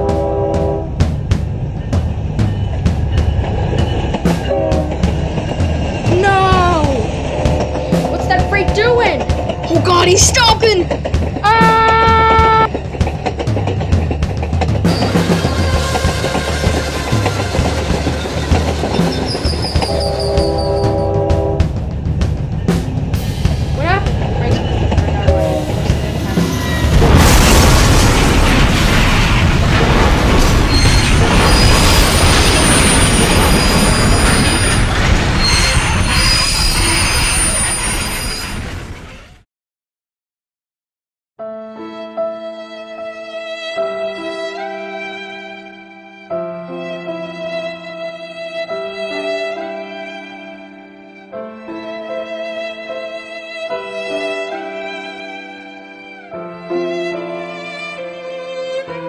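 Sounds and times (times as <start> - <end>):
train horn blasts: 0.0 - 1.2, 4.4 - 5.2, 11.5 - 12.7, 19.7 - 21.8, 25.1 - 26.0
running train noise: 0.0 - 39.3.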